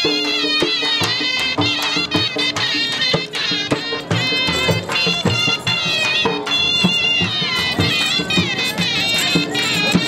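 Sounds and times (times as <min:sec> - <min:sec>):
steady drum beat: 0:00.0 - 0:10.0
wavering reed-like melody: 0:00.0 - 0:10.0.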